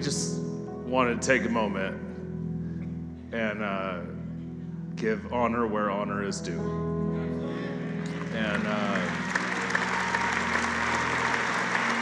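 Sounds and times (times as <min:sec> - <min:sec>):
congregation applauding: 0:07.4 - 0:12.0.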